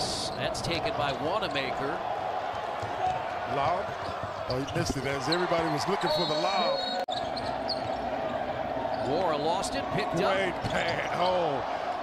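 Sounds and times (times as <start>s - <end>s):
crowd noise: 0.0s - 12.0s
basketball court sounds: 1.0s - 9.1s.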